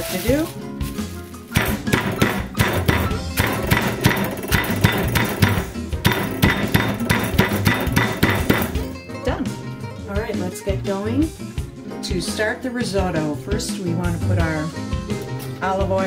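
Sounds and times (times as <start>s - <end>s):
background music: 0.0s - 16.0s
meat being pounded thuds: 1.5s - 8.9s.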